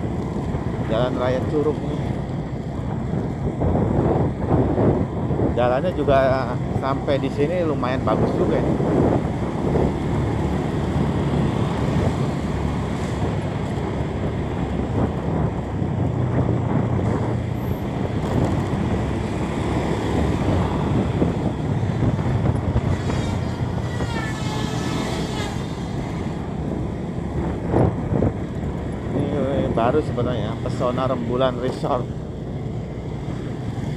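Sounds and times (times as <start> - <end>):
road noise: 0.0 - 33.9
vehicle engine rumble: 0.0 - 33.9
wind buffeting microphone: 0.0 - 33.9.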